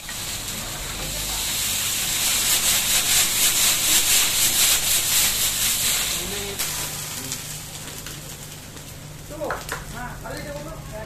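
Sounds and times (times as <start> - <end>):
scraping strokes on a griddle: 0.0 - 7.4.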